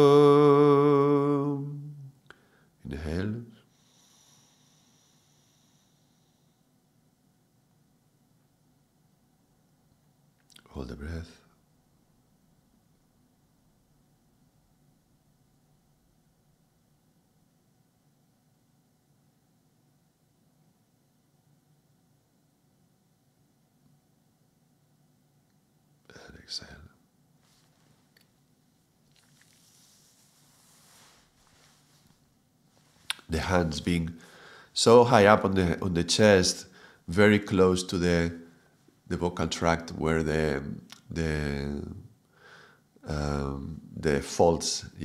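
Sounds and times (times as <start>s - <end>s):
faint high hiss: 0.0s - 45.0s
man whispering: 10.6s - 11.5s, 26.1s - 27.0s, 33.1s - 38.3s, 43.0s - 45.0s.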